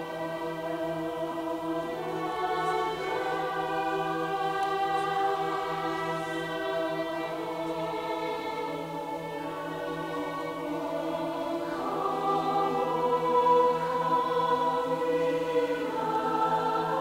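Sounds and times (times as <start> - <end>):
mixed choir singing chords: 0.0 - 17.0.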